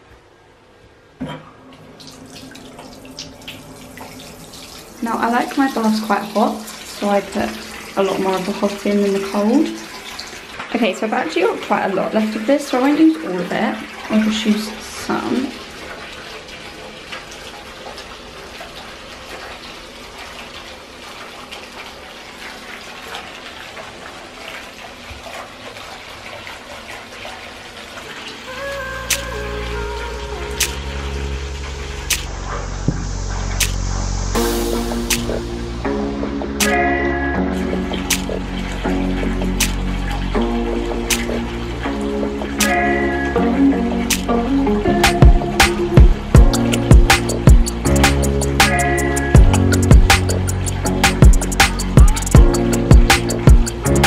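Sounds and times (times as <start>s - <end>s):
water pouring into bathtub: 1.6s - 54.0s.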